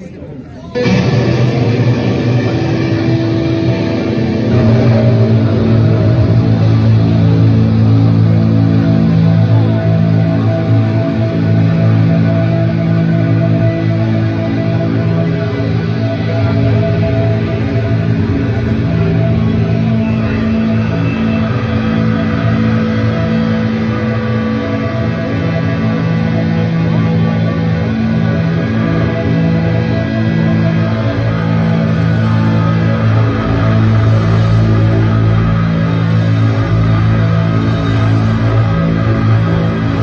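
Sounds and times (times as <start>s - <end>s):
bass sustained chords: 0.7s - 40.0s
distorted electric guitars: 0.7s - 40.0s
metal band playing live: 0.7s - 40.0s.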